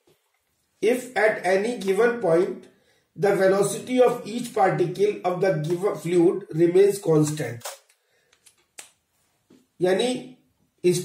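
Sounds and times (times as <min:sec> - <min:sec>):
man speaking: 0:00.8 - 0:07.8, 0:09.8 - 0:11.0.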